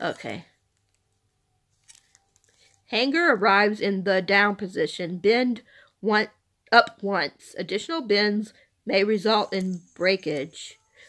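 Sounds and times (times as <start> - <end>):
woman reading aloud: 0.0 - 0.6, 2.9 - 10.8
plastic package rustling: 0.0 - 2.9.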